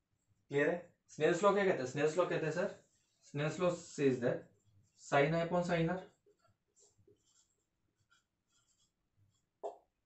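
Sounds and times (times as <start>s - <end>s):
marker pen writing on whiteboard: 2.1s - 10.0s.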